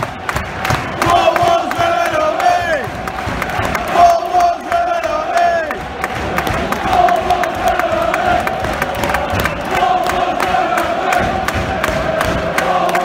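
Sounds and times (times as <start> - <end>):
football crowd chanting: 0.0 - 13.0.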